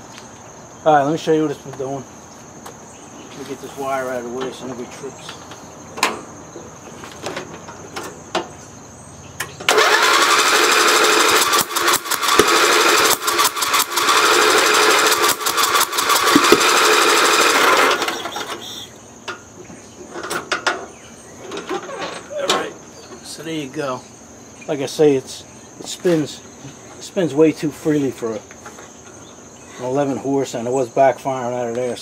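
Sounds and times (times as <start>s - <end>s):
engine cranked by starter: 9.4s - 18.9s.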